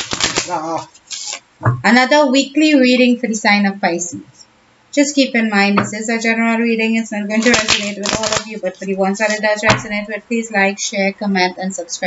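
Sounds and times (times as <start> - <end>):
cards being shuffled: 0.0 - 1.4, 7.4 - 8.6, 9.2 - 9.6.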